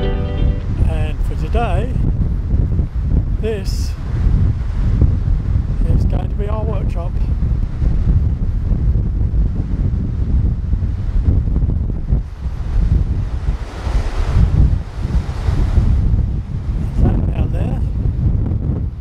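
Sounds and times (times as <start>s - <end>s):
wind buffeting the microphone: 0.0s - 19.0s.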